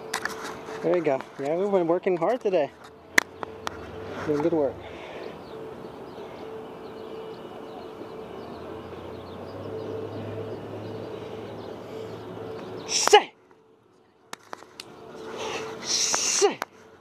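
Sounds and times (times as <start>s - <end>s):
low mechanical hum: 0.0s - 16.1s.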